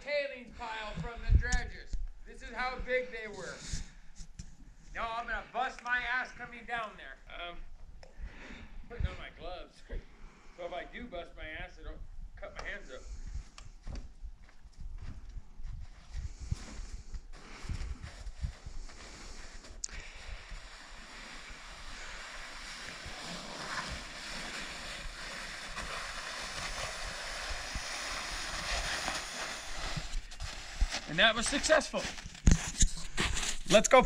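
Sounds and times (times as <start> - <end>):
wind buffeting microphone: 13.0 - 19.0
steady hiss: 18.5 - 32.0.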